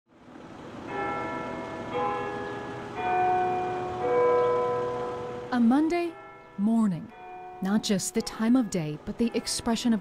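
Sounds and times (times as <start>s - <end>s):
church bells tolling: 0.8s - 10.0s.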